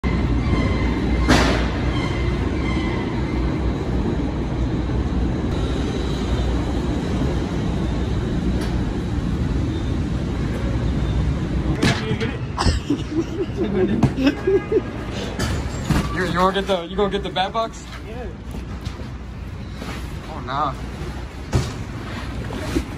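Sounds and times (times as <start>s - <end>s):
conveyor machinery rumbling: 0.0s - 22.9s.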